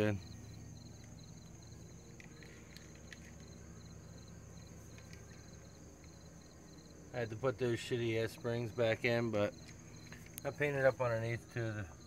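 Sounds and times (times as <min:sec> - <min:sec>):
cricket chirping: 0:00.0 - 0:12.0
low hum: 0:00.0 - 0:12.0.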